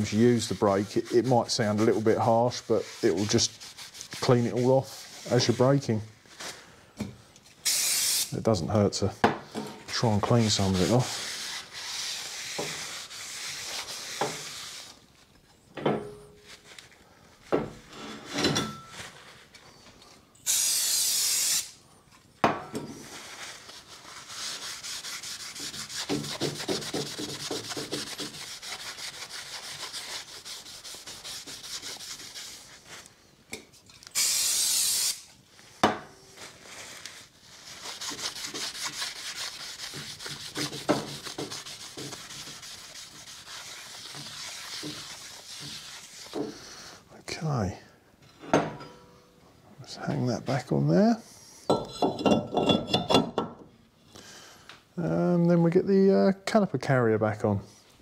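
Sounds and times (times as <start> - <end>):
cloth wiping metal disc: 0.0 - 6.5, 9.9 - 15.3, 23.0 - 33.1, 36.3 - 46.6
aerosol spray hissing: 7.6 - 8.4, 20.5 - 21.8, 34.2 - 35.3.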